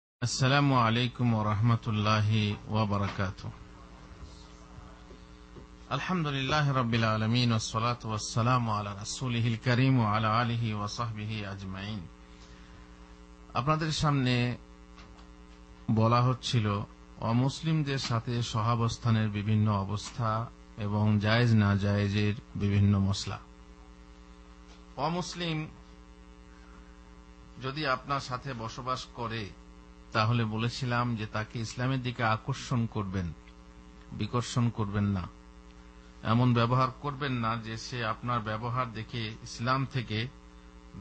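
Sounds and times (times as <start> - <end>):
man's voice: 0.2 - 3.6, 15.9 - 23.5
electrical mains hum: 0.2 - 41.0.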